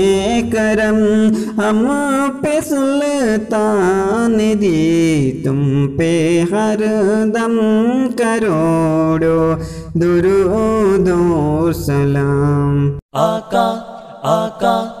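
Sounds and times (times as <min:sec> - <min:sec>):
man singing melismatic lines: 0:00.0 - 0:15.0
low steady drone: 0:09.2 - 0:12.0.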